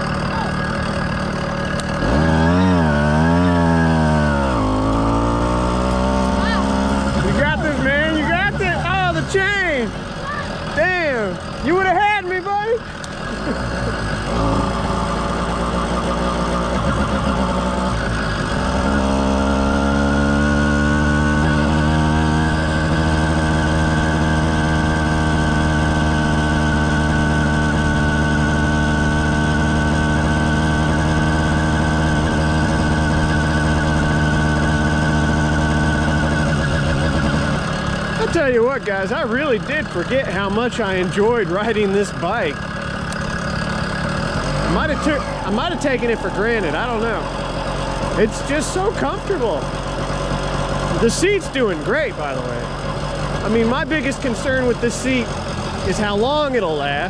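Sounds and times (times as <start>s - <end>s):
two-stroke engine revving: 0.0s - 57.0s.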